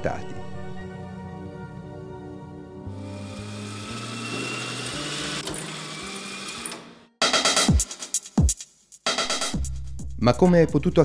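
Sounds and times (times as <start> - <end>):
microfilm reader whirring: 3.0 - 6.9.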